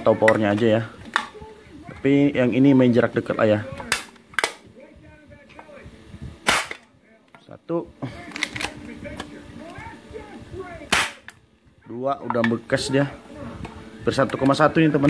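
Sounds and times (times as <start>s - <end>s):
pistol being worked clicks: 3.9s - 4.6s, 6.4s - 6.8s
airsoft pistol shots into tin can: 6.4s - 6.8s, 10.9s - 11.2s.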